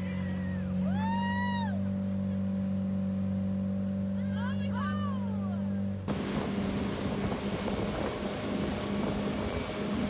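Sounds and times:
motorboat engine running: 0.0 - 10.0.

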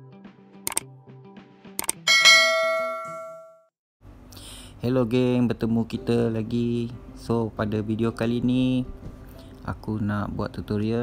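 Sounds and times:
double mouse click: 1.8 - 2.0
notification bell chime: 2.1 - 3.6
soft background music: 4.1 - 11.0.

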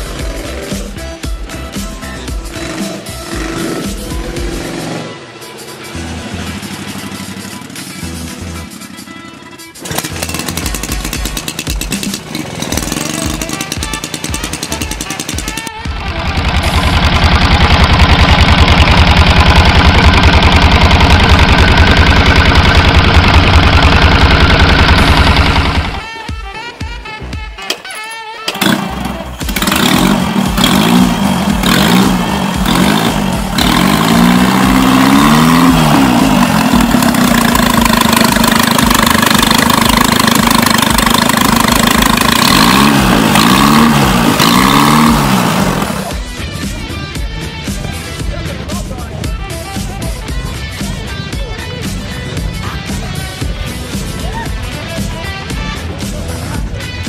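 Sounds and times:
motorcycle engine revving: 0.0 - 26.2, 28.4 - 48.2
motorcycle engine running: 0.0 - 26.5, 28.4 - 57.0.

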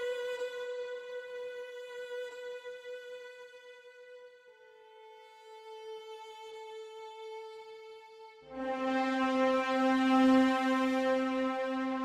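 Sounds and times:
long held note: 8.5 - 12.0
low sustained note: 8.5 - 12.0.

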